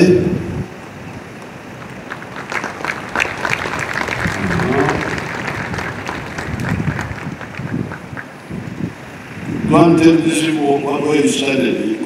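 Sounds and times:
crowd applauding: 1.8 - 8.4.

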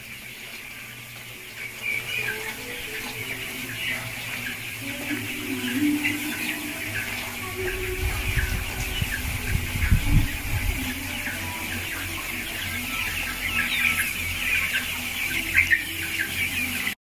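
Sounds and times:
chicks peeping: 0.0 - 17.0.

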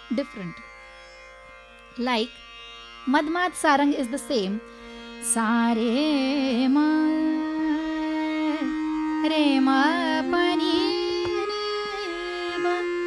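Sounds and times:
sustained accompaniment: 3.1 - 13.0
woman singing classical phrase: 5.3 - 13.0.

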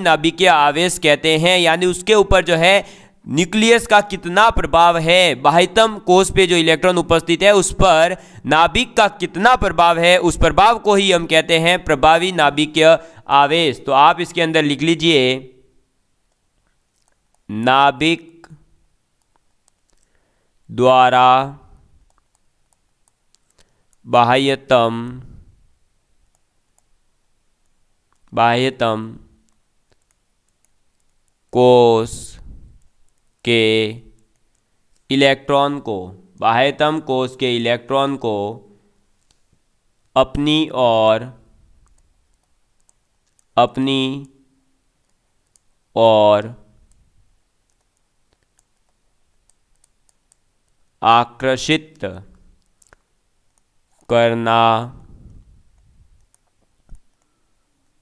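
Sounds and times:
stylus clicking on tablet: 16.2 - 17.5, 18.4 - 20.2, 21.9 - 24.1, 26.2 - 28.4, 29.4 - 31.6, 32.7 - 33.5, 34.1 - 35.1, 41.8 - 44.4, 45.0 - 45.8, 46.8 - 50.9, 51.8 - 54.1, 55.3 - 58.0.

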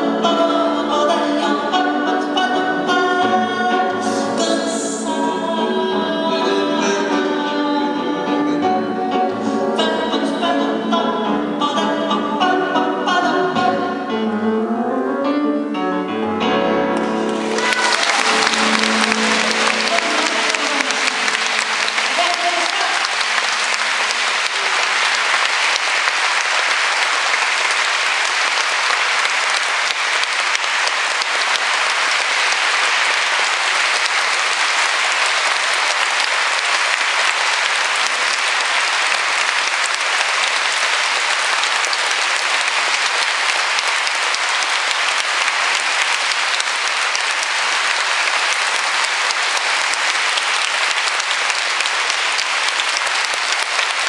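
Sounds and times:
audience applauding: 17.0 - 54.0.

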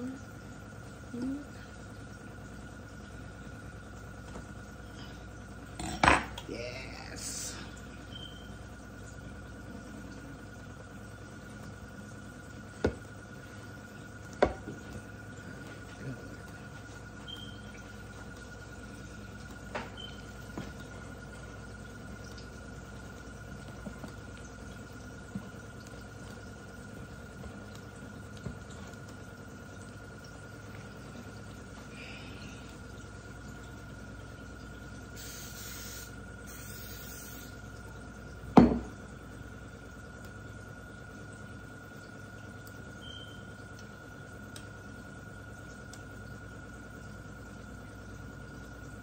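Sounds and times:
faint hum with high tone: 0.0 - 49.0
cooking spray hissing: 35.1 - 37.7.

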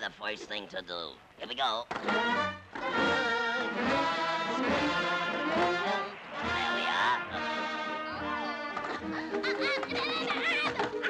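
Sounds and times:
orchestral cartoon music with brass: 2.0 - 9.5.

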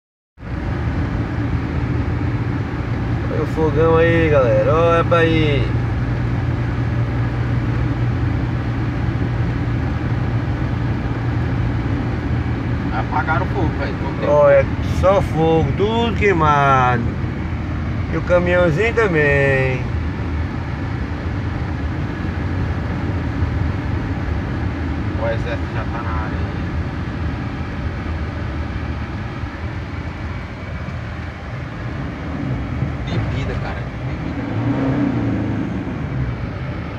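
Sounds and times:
road noise: 0.4 - 36.9
vehicle engine hum: 0.4 - 36.9.

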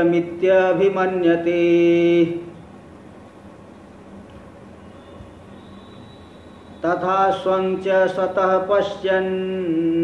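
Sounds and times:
man chanting: 0.0 - 2.5, 6.8 - 10.0
faint room hiss: 0.0 - 10.0.

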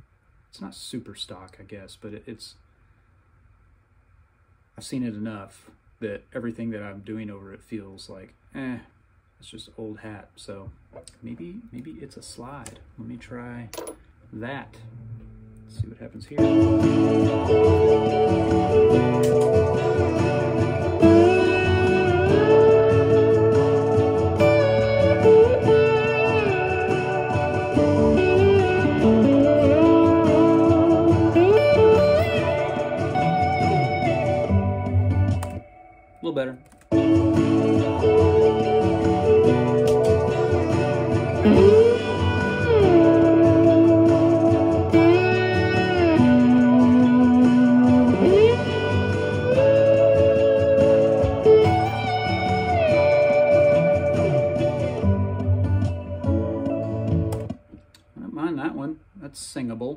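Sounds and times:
backing track held chords: 11.1 - 58.2
electric slide guitar lead: 14.8 - 36.0, 36.9 - 57.6.

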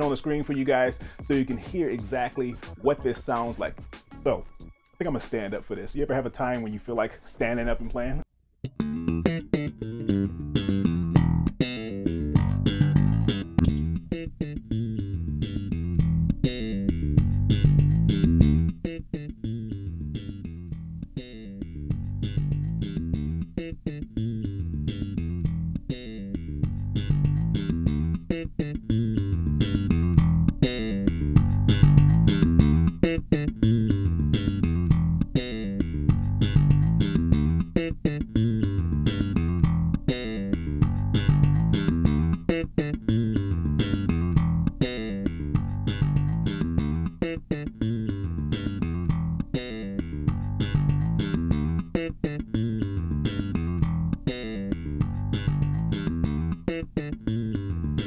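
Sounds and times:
electric bass guitar groove: 0.0 - 4.8, 8.6 - 58.0.

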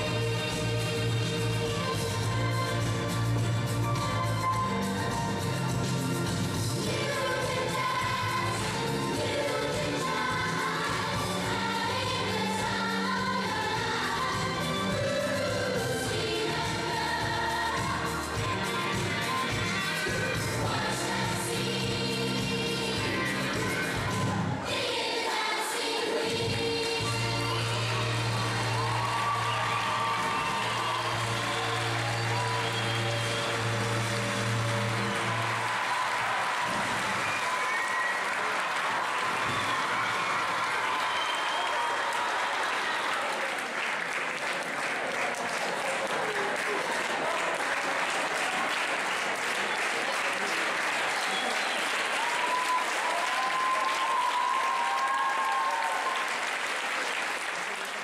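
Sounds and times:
audience clapping and cheering: 0.0 - 25.0, 25.8 - 58.0
upbeat stage music: 0.0 - 58.0.

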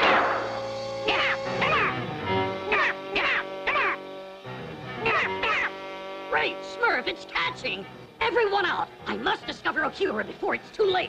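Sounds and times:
background music: 0.0 - 11.0
cartoon characters squawking: 1.0 - 4.1, 5.0 - 5.8.

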